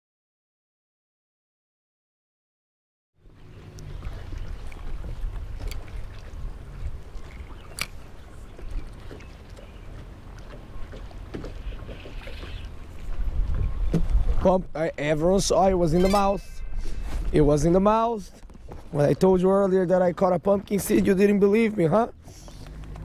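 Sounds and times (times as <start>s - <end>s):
wind rumbling on microphone: 3.2s - 19.4s
water lapping at hull: 3.2s - 23.0s.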